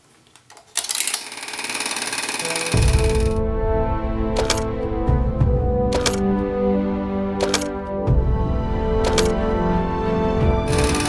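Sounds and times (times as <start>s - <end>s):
film projector clatter: 0.8s - 3.3s, 10.7s - 11.0s
music with deep bass hit: 2.7s - 11.0s.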